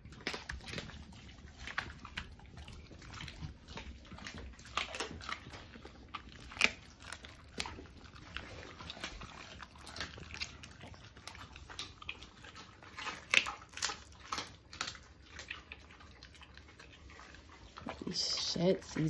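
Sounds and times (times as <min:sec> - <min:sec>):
dogs chewing raw chicken: 0:00.0 - 0:19.0.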